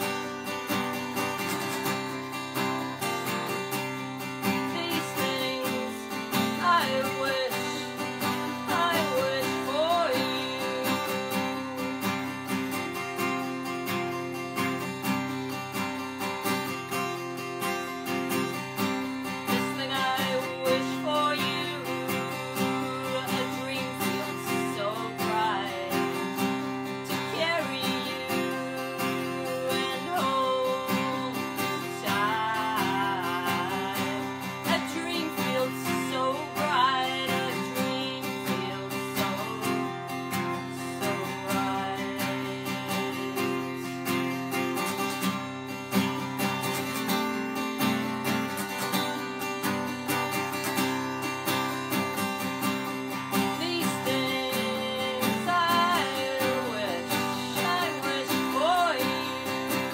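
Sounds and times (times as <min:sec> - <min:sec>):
woman singing: 0:00.0 - 0:45.2, 0:50.1 - 0:59.9
acoustic guitar strumming: 0:00.0 - 0:59.9.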